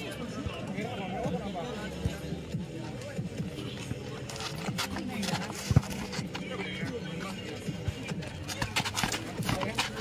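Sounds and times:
onlookers' voices: 0.0 - 10.0.

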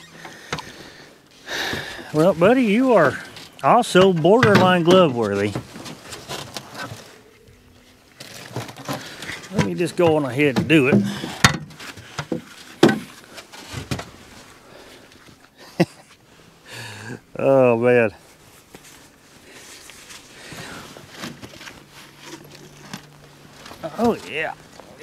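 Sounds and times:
knocks and clicks of handling gear: 0.1 - 0.8, 3.2 - 7.0, 8.2 - 14.2.

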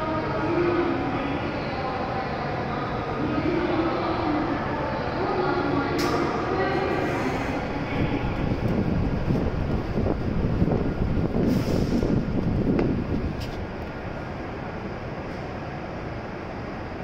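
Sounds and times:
train rumbling: 0.0 - 17.0.

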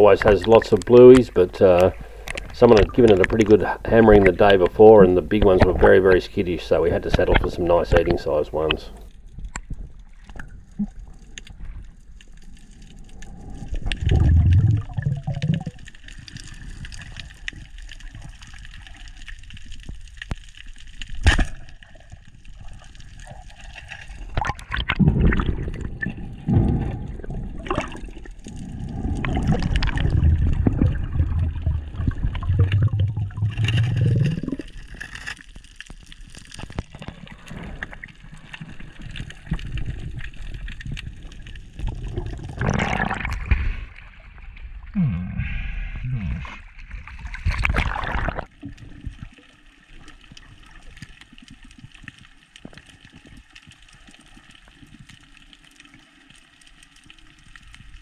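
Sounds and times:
underwater gurgling and sloshing: 0.0 - 58.0.

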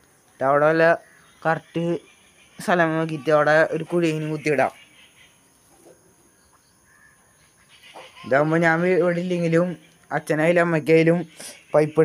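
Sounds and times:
faint animal call: 2.0 - 9.6.

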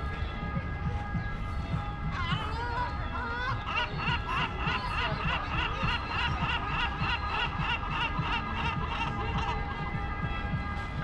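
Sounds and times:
rapid laughing calls: 2.2 - 9.9.

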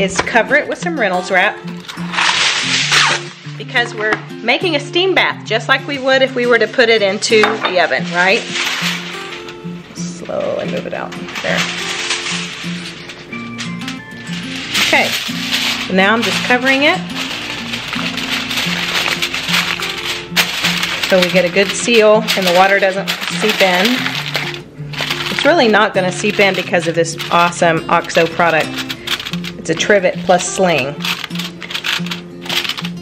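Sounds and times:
background music: 0.0 - 33.0
aluminium foil crinkling: 0.7 - 4.8, 5.6 - 33.0.

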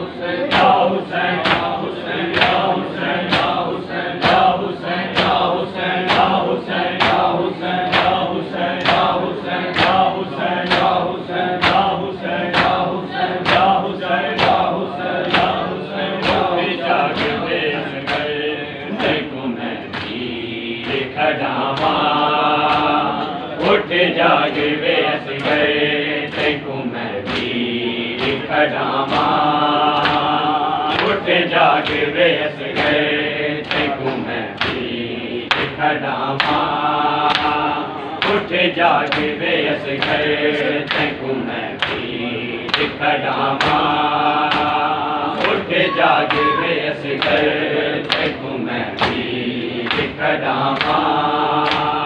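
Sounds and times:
men chanting together: 0.0 - 52.0
rhythmic chest-beating: 0.0 - 52.0
hands slapping chests: 50.8 - 52.0.

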